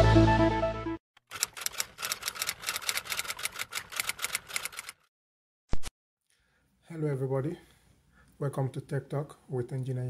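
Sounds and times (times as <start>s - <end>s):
rapid sharp clicks: 1.3s - 5.1s.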